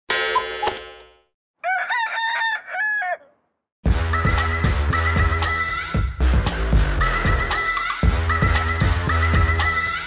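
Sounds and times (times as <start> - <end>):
rooster crowing: 1.6 - 3.5
music: 3.8 - 10.0.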